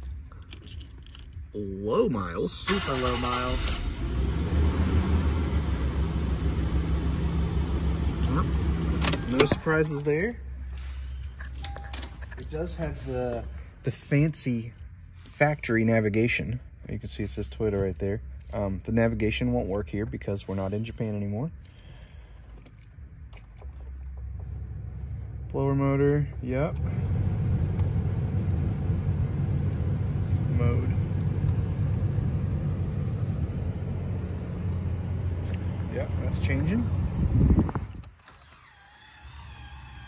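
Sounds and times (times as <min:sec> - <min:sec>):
car engine idling: 0:02.5 - 0:15.4, 0:16.6 - 0:38.0.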